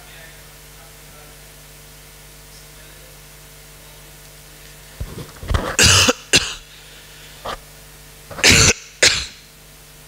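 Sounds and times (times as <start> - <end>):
person coughing: 5.6 - 6.7, 8.3 - 9.5.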